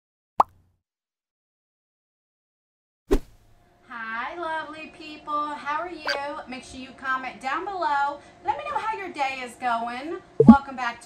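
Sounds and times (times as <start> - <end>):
pop with upward pitch slide: 10.4 - 10.6.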